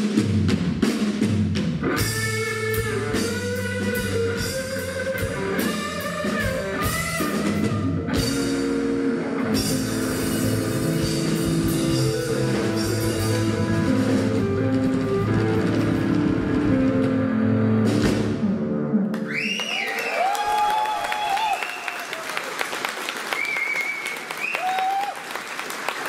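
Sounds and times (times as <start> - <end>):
drum kit: 0.0 - 19.3
electric guitar lead line: 1.8 - 19.4.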